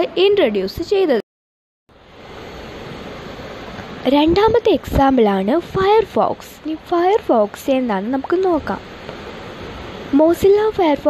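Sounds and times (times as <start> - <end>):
steady background hiss: 1.9 - 11.0.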